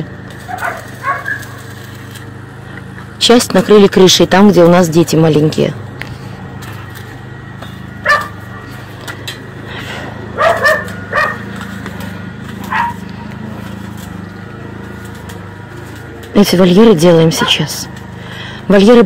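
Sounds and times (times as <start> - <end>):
steady low hum: 0.0 - 19.0
dogs barking: 0.4 - 1.8, 8.0 - 8.8, 10.2 - 11.8, 12.4 - 13.4, 17.2 - 17.8.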